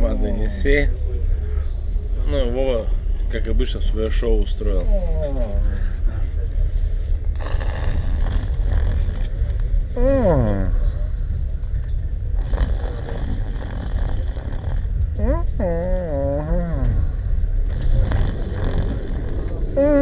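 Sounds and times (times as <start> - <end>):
train rumbling: 0.0 - 20.0
man breathing in sleep: 6.0 - 9.9, 10.6 - 15.1, 16.8 - 20.0.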